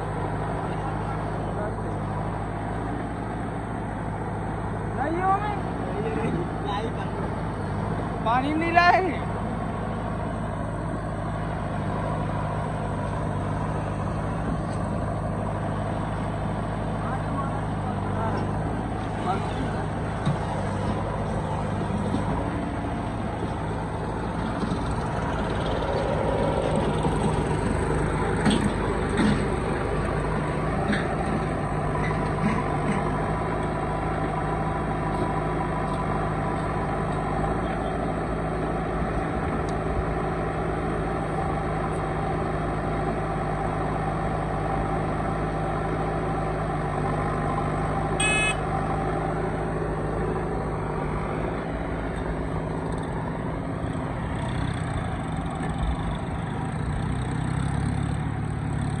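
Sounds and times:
diesel engines running: 0:00.0 - 0:59.0.

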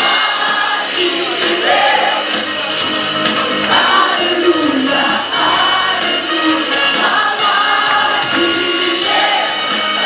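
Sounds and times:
amplified musical backing: 0:00.0 - 0:10.0
singers on microphones: 0:00.0 - 0:10.0.

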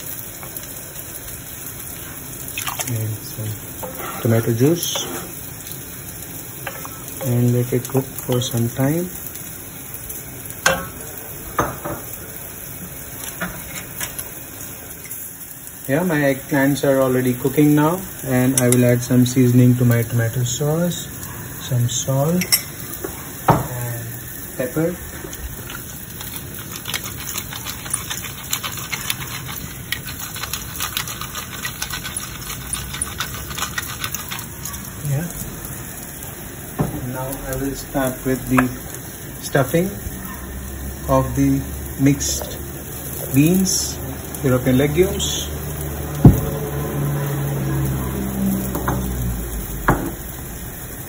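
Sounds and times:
frying sizzle: 0:00.0 - 0:51.0
wooden spoon stirring sauce: 0:03.8 - 0:05.8, 0:25.1 - 0:34.9
utensil clinking on pot: 0:22.4 - 0:22.8.

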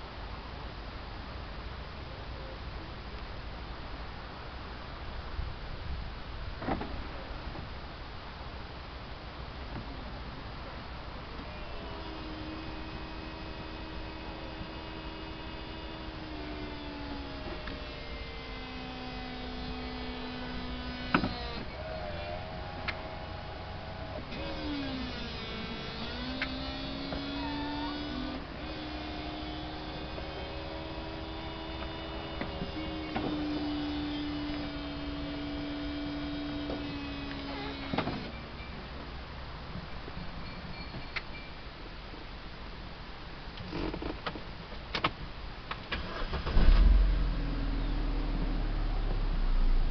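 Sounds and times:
convertible roof motor humming: 0:11.2 - 0:38.5.

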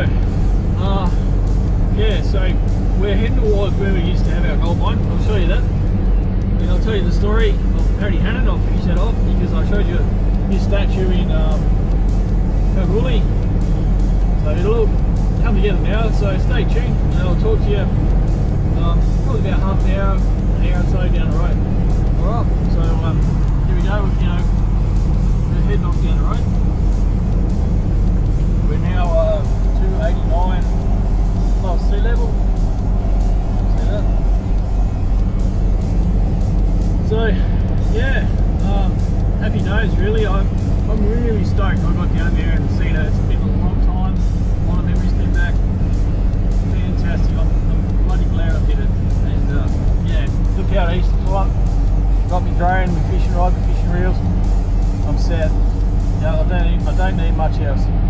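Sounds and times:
in-cabin engine and tyre drone: 0:00.0 - 0:58.0.

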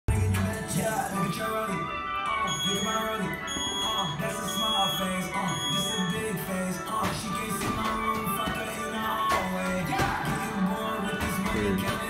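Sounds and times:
music with singing: 0:00.1 - 0:12.0
interval timer short high beeps: 0:02.4 - 0:06.3.

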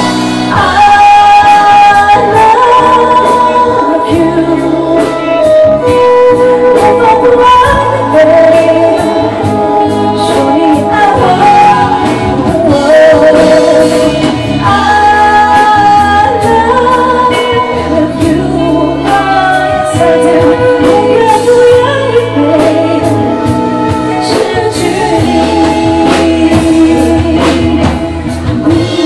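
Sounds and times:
woman singing into a microphone: 0:00.0 - 0:29.0.

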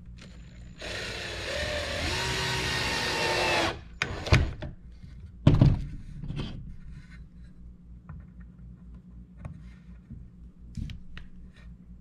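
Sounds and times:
cordless drill into wood: 0:00.8 - 0:04.6.

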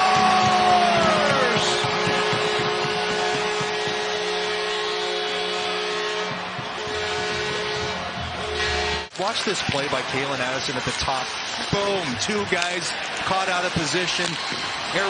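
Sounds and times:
crowd cheering: 0:00.0 - 0:15.0
arena goal horn blast: 0:00.2 - 0:09.2.

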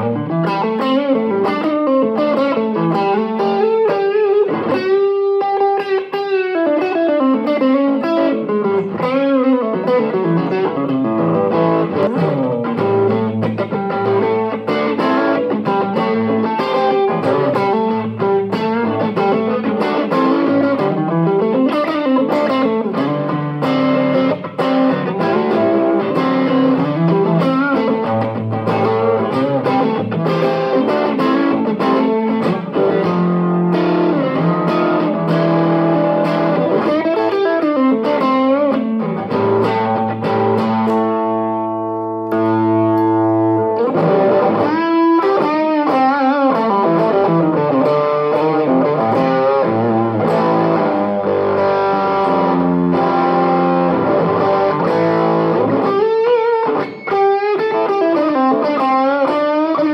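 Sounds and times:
overdriven electric guitar: 0:00.0 - 0:59.9.

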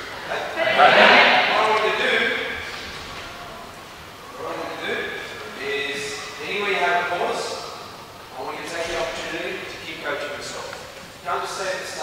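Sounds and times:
man speaking with echo: 0:00.3 - 0:02.8, 0:04.4 - 0:12.0.

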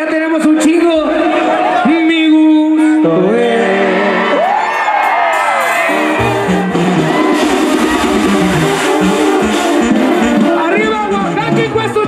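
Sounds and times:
crowd whooping and cheering: 0:01.0 - 0:02.2, 0:03.6 - 0:10.8
band with tuba and brass: 0:03.0 - 0:12.0.

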